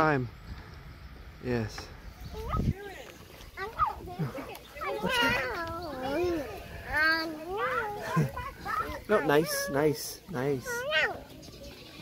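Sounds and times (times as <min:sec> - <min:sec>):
animal bleating: 0:11.5 - 0:12.0.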